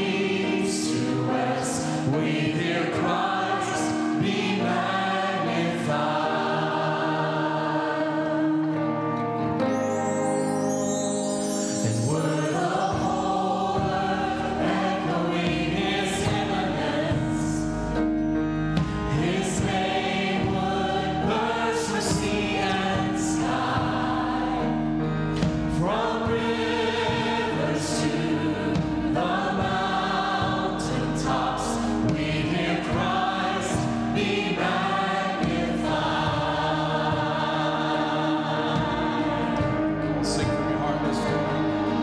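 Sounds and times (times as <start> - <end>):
choir singing gospel song: 0.0 - 42.0
piano and band accompaniment: 0.0 - 42.0.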